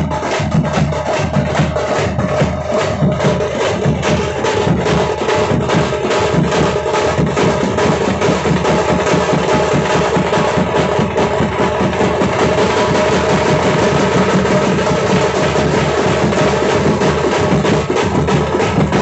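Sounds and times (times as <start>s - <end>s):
drum group playing fast rhythm: 0.0s - 19.0s.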